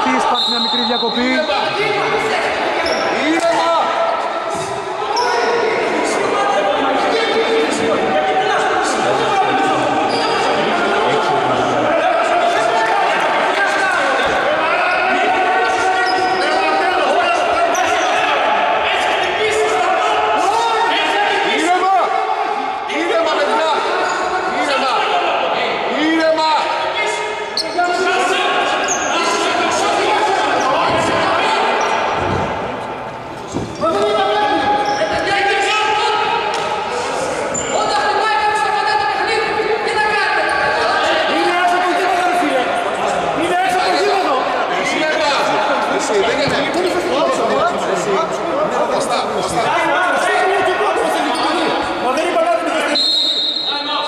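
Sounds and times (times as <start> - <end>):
people talking and calling out: 0.0 - 54.0.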